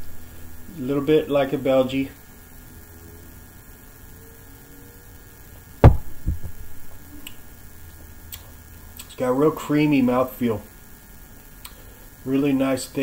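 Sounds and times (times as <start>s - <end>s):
low electrical hum: 0.0s - 13.0s
glass knock: 5.8s - 6.6s
glass thumping on wooden table: 5.8s - 6.6s.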